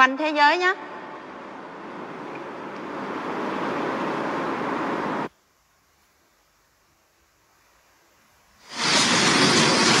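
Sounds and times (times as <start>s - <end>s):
steady rushing noise: 0.0s - 5.3s, 8.6s - 10.0s.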